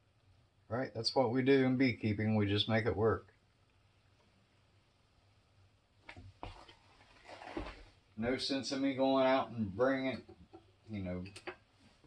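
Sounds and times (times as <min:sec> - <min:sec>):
soft scraping: 0:06.1 - 0:08.0.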